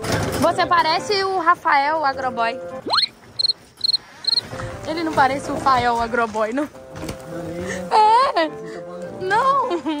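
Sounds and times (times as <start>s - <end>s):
electronic beeper beeping: 2.9s - 4.4s.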